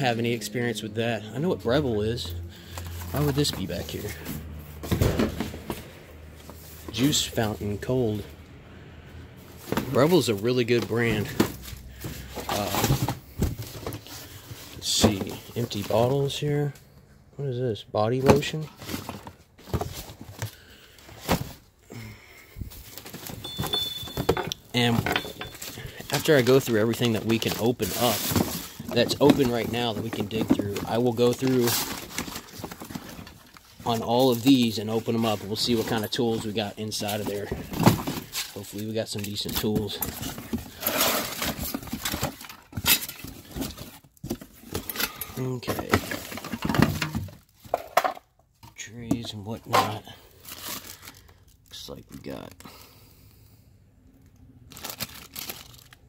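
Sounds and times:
rummaging through cardboard boxes: 0.0s - 8.4s, 9.3s - 16.8s, 18.0s - 52.8s, 54.7s - 56.0s
plastic bottles clattering: 1.0s - 8.0s, 9.6s - 16.3s, 18.2s - 22.0s, 22.8s - 51.2s
bags rustling: 9.4s - 16.5s, 18.3s - 47.7s, 54.7s - 56.0s.

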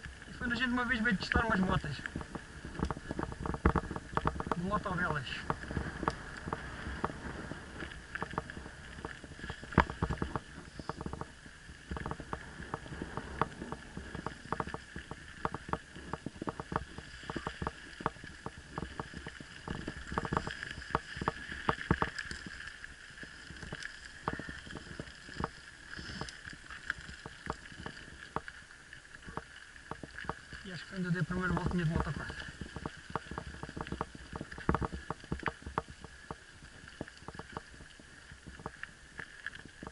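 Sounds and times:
mountain bike rattling over gravel: 0.0s - 39.9s.

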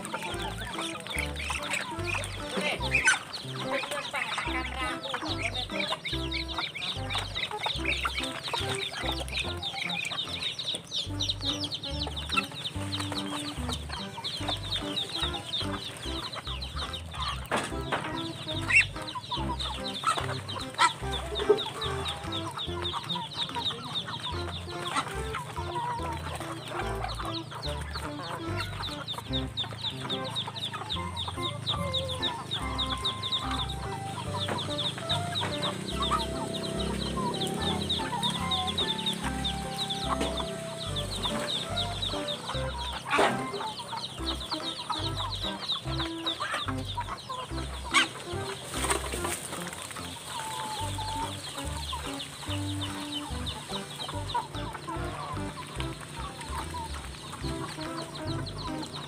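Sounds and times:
background music: 0.0s - 59.0s
chickens clucking: 0.0s - 59.0s.

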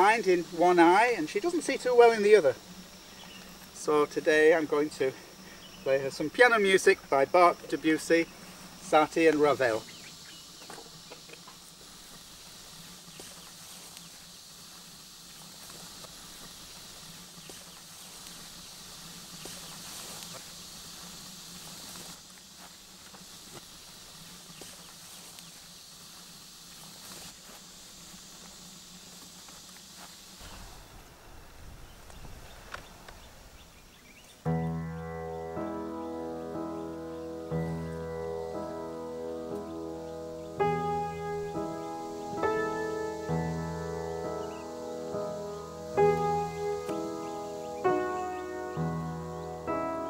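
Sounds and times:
steady high hiss: 0.0s - 50.0s.

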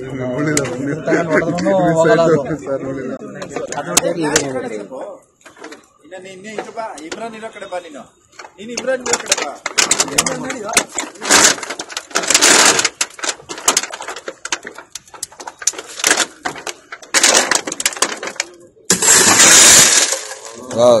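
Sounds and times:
people talking: 0.0s - 11.0s, 20.4s - 21.0s
car window glass breaking: 9.0s - 20.7s.

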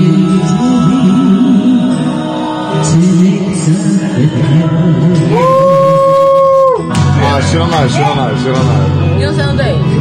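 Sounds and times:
karaoke backing track: 0.0s - 10.0s
woman singing karaoke: 9.0s - 10.0s.

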